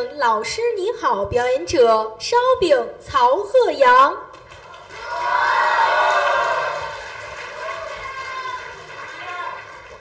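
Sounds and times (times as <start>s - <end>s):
audience applauding and cheering: 4.4s - 10.0s.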